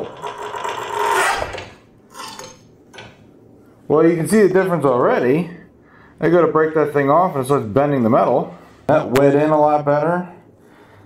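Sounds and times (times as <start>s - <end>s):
metal plate scraping with ringing creak: 0.0s - 2.7s.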